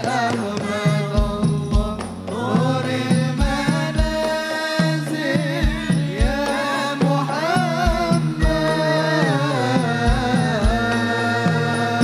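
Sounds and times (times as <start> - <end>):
drums with falling pitch: 0.0 - 12.0
men and boys chanting: 0.0 - 12.0.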